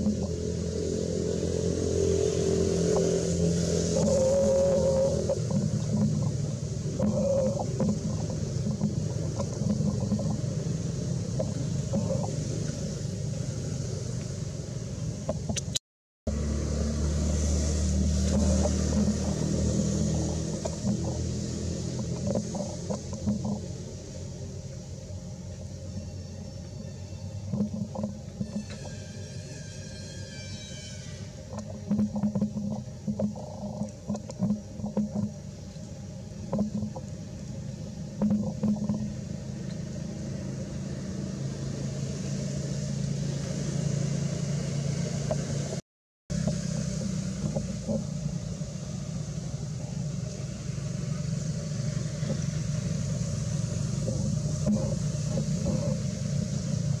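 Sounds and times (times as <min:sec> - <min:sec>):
low mechanical rumble: 0:00.0 - 0:57.0.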